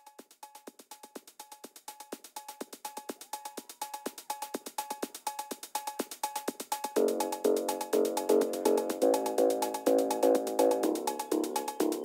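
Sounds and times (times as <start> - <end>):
drum machine high ticks: 0.0 - 12.0.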